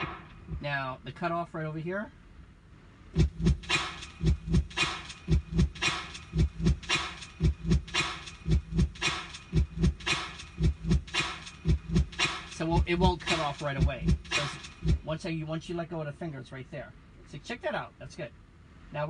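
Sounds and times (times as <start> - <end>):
keyboard percussion loop: 3.2 - 15.2.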